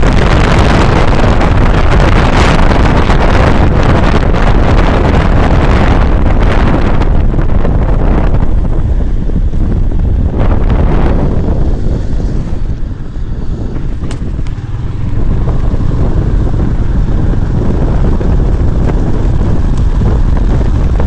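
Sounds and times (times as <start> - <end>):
motorcycle engine and road noise: 0.0 - 21.0
wind buffeting microphone: 0.0 - 21.0.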